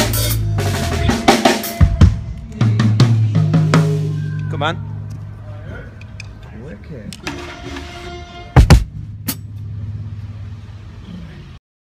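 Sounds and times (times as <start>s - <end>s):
steady low hum: 2.0s - 11.6s.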